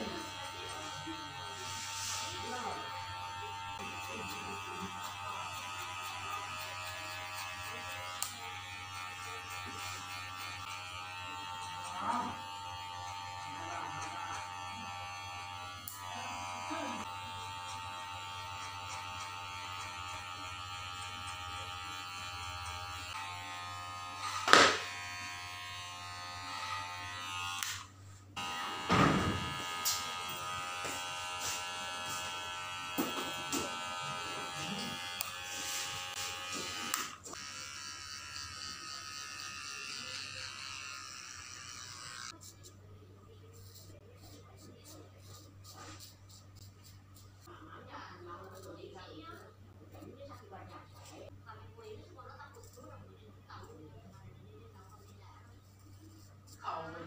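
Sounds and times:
hair clipper buzzing: 0:00.0 - 0:42.4.

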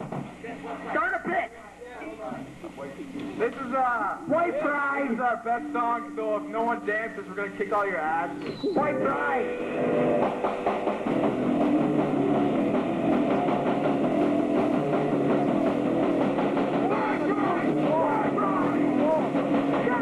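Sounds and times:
distorted electric guitar: 0:04.3 - 0:20.0
drum kit: 0:05.6 - 0:20.0
bass guitar: 0:08.0 - 0:20.0.

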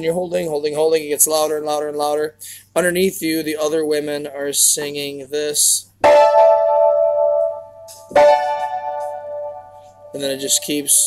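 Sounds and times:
piano chords ringing: 0:06.0 - 0:11.0.

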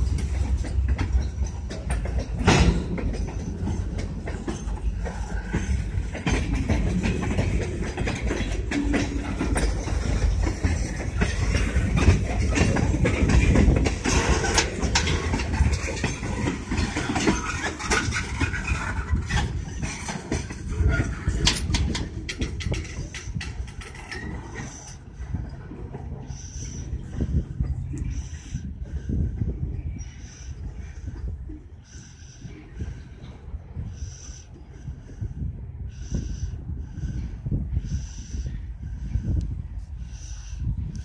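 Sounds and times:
freight train wheels clanking on rails: 0:00.0 - 0:41.0.

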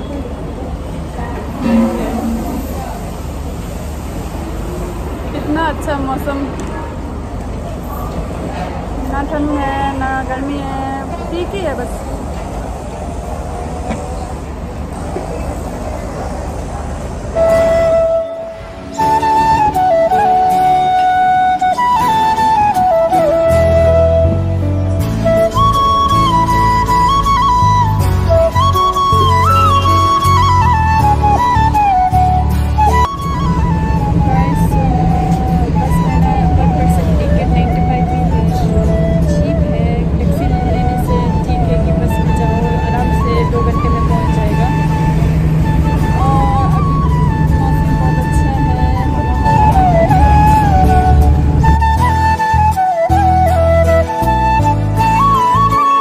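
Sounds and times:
bus rumbling: 0:00.0 - 0:56.0
song playing: 0:01.6 - 0:02.9, 0:17.4 - 0:56.0
low rumble: 0:33.0 - 0:52.2.

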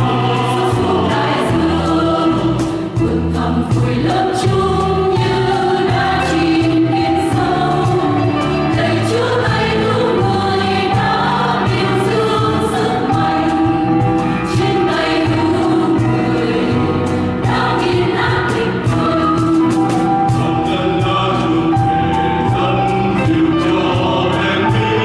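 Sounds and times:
choir singing a hymn: 0:00.0 - 0:25.0.

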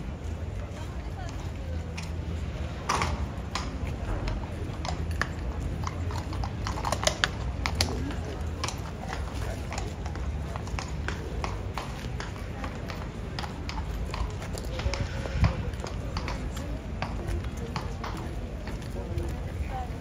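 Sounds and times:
crowd chatter: 0:00.0 - 0:20.0
hooves clip-clopping on stone: 0:00.0 - 0:20.0.

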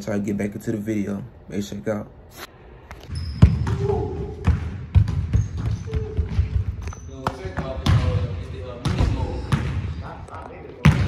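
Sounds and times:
basketball bouncing on hardwood floor: 0:03.1 - 0:09.8.

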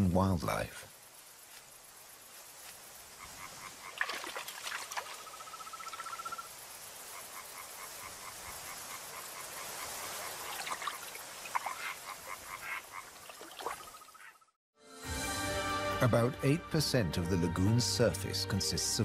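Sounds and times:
steady high hiss: 0:00.0 - 0:03.9, 0:05.2 - 0:10.5
frogs croaking: 0:00.9 - 0:14.6.

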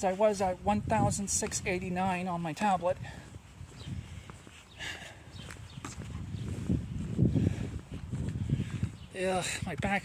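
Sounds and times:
footsteps: 0:02.6 - 0:09.0
microphone handling noise: 0:05.3 - 0:09.1.

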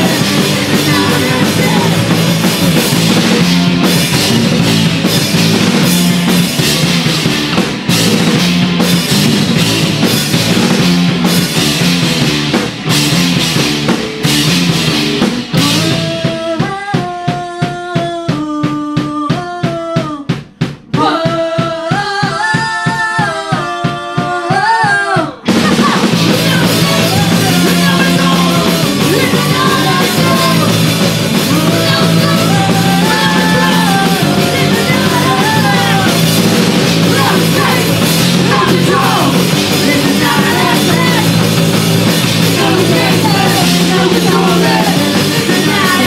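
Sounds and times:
singer: 0:00.0 - 0:02.5, 0:15.5 - 0:46.0
distorted electric guitars: 0:00.0 - 0:16.6, 0:25.4 - 0:46.0
drum beat: 0:00.0 - 0:46.0
punk rock band playing live: 0:00.0 - 0:46.0.

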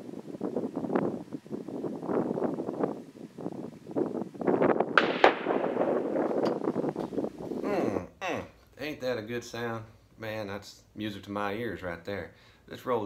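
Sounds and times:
bullet hitting animal: 0:05.0 - 0:06.6
distant rifle report: 0:05.0 - 0:06.7.

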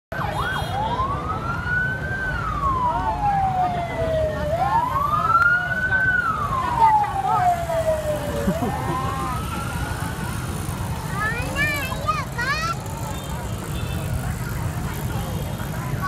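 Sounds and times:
police siren wailing: 0:00.1 - 0:11.9
fainter sirens: 0:00.1 - 0:12.8.

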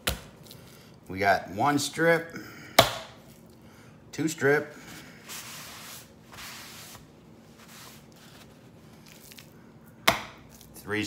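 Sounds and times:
paper towel rustling on hand: 0:04.7 - 0:09.4.

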